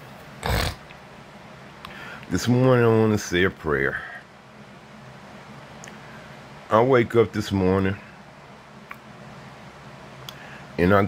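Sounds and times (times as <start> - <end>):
low room noise: 0.0 - 11.0
man snorting: 0.4 - 0.9
faint click: 1.8 - 2.3, 10.2 - 10.4.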